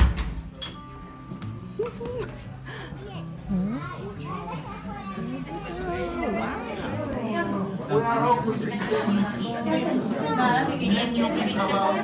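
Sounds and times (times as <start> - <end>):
people chattering: 1.0 - 12.0
children's voices: 2.8 - 7.2.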